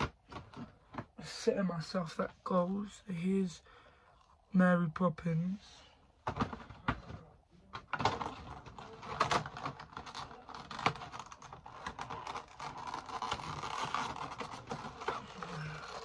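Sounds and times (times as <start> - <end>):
plastic and cardboard packaging crinkling: 6.3 - 16.0.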